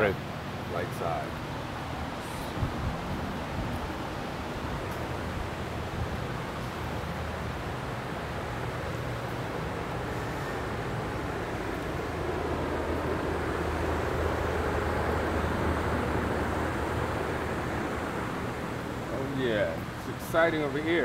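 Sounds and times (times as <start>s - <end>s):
garage background hum: 0.0s - 21.0s.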